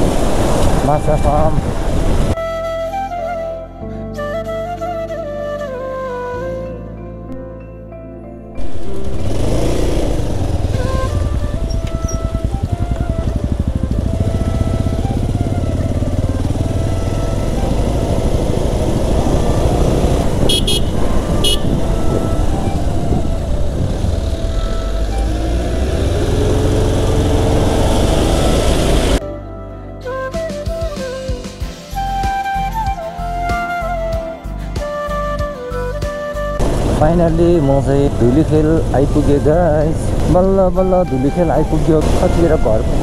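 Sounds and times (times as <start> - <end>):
wind noise on microphone: 0.0 - 2.5, 8.6 - 29.2, 36.4 - 43.0
motorcycle engine running: 8.6 - 29.2, 36.6 - 40.3.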